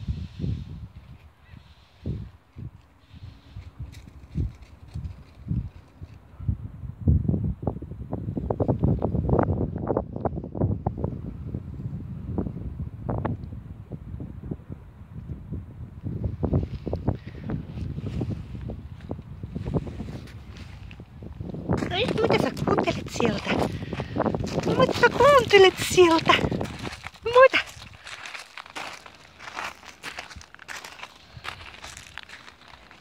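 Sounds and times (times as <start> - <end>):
wind buffeting microphone: 0.0 - 33.0.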